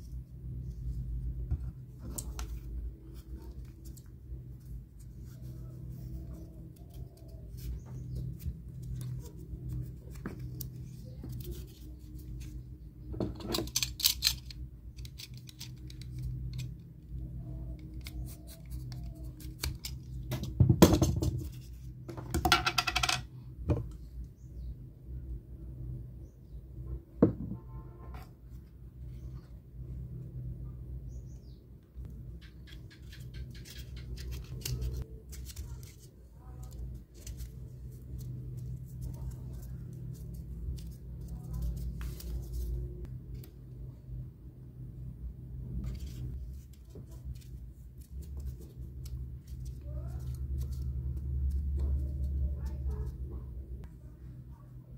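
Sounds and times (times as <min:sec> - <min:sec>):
low steady hum: 0:00.0 - 0:54.9
plastic parts clicking and scraping: 0:13.2 - 0:23.2.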